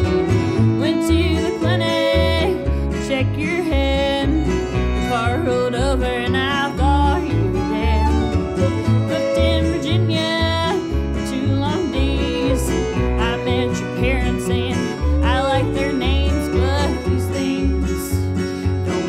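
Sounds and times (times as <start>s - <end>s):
bass line: 0.0s - 19.0s
fiddle melody: 0.0s - 19.0s
strummed acoustic guitar: 0.0s - 19.0s.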